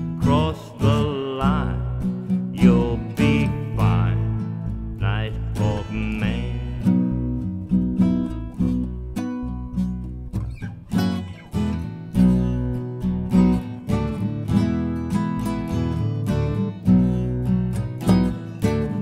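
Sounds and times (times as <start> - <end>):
person singing: 0.0 - 7.2
acoustic guitar strumming chords: 0.0 - 19.0.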